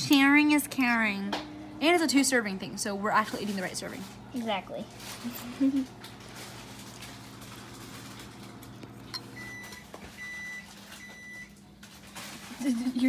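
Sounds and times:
appliance electric hum: 0.0 - 13.0.

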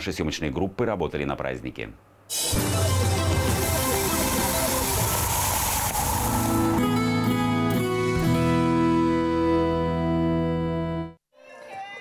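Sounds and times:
news intro music: 2.3 - 9.4
whooshing transition effect: 4.0 - 7.4.

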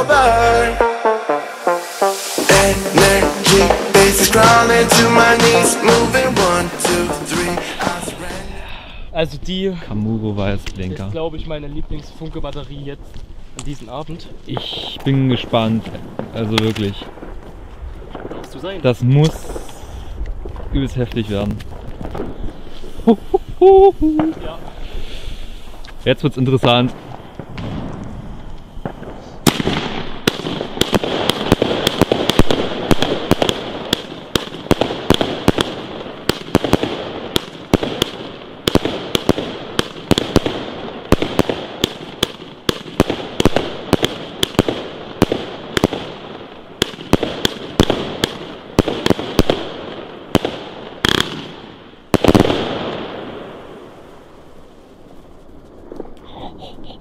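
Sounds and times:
high hiss: 1.5 - 8.8
firework crackle: 1.7 - 8.6, 11.7 - 57.0
firework bursting cracks: 2.0 - 8.5, 14.5 - 23.3, 26.8 - 56.3
firework launch thumps: 26.9 - 35.7
loud firework bang: 27.4 - 46.1.

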